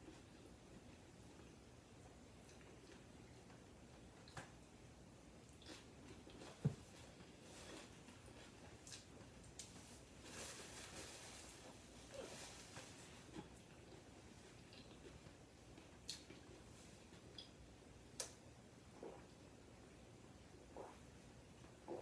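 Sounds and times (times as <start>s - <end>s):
paper napkin rustling: 9.7s - 13.3s.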